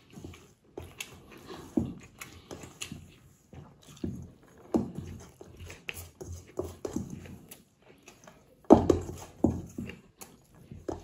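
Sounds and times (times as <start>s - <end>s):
chewing and wet mouth sounds: 0.0s - 11.0s.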